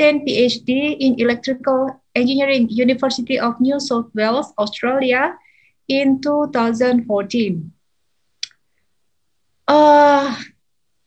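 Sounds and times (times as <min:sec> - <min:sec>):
woman speaking: 0:00.0 - 0:07.8, 0:09.7 - 0:10.5.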